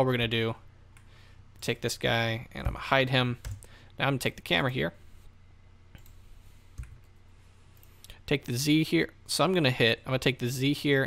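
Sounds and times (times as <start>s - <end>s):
faint low hum: 0.0s - 11.0s
computer mouse clicking: 6.0s - 6.2s, 6.8s - 7.1s.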